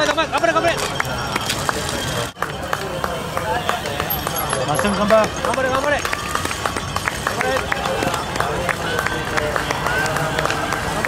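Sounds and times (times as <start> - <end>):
bike clicks and crunches: 0.0 - 11.0
spectators calling out and cheering: 0.0 - 11.0.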